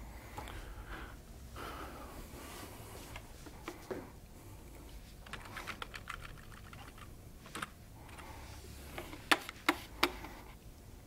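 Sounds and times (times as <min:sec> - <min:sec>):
typing on computer keyboard: 0:05.2 - 0:07.7.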